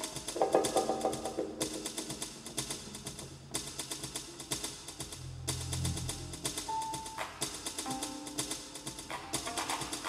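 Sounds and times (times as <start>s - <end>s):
low synthesizer bass: 4.9s - 7.1s
deep bass note: 5.1s - 6.9s.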